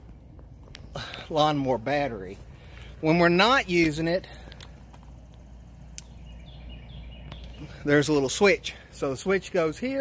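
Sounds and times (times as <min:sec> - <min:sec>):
steady low hum: 0:00.0 - 0:09.8.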